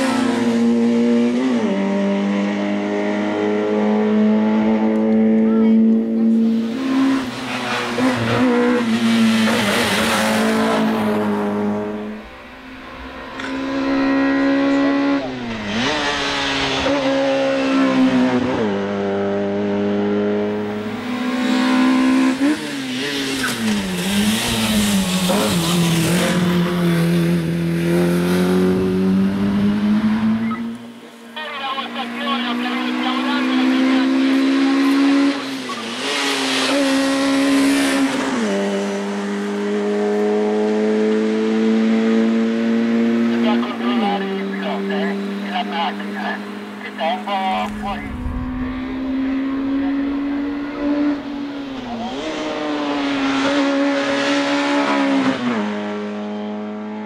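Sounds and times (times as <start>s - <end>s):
race car engine at high revs: 0.0s - 57.0s.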